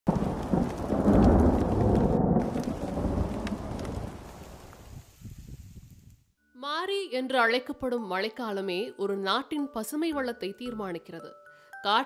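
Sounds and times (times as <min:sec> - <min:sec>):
thunder rolling: 0:00.1 - 0:05.0
heavy rain: 0:00.1 - 0:05.4.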